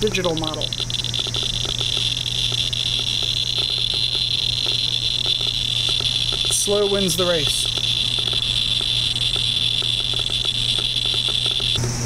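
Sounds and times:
geiger counter clicking rapidly: 0:00.0 - 0:11.8.

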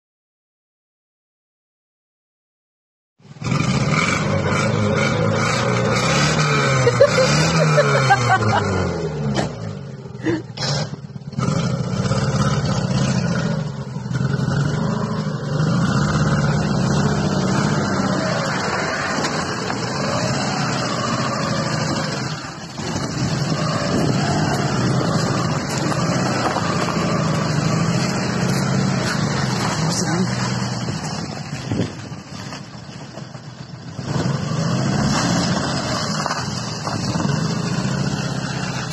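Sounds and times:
car engine running: 0:04.5 - 0:34.1
voices: 0:28.5 - 0:30.5.

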